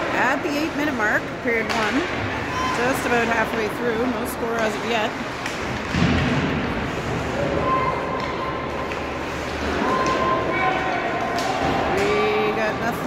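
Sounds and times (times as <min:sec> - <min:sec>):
thud: 0:05.8 - 0:07.7.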